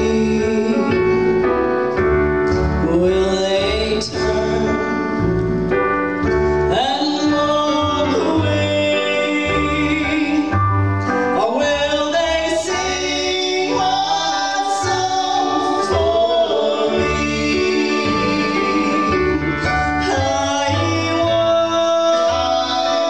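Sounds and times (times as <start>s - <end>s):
person singing: 0.0s - 1.5s, 2.7s - 5.8s, 6.7s - 10.6s, 11.2s - 23.0s
keyboard: 0.0s - 23.0s
plucked upright bass: 0.0s - 23.0s.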